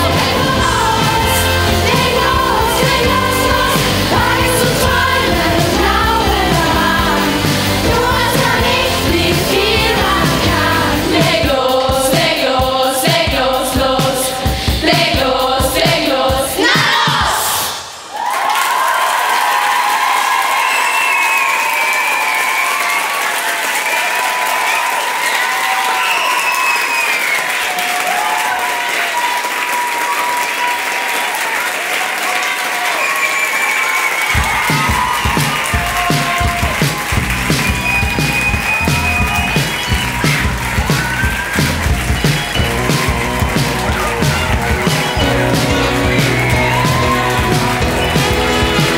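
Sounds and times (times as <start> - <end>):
audience applauding and cheering: 0.0 - 11.8, 17.5 - 48.9
music with a steady beat: 34.4 - 48.9.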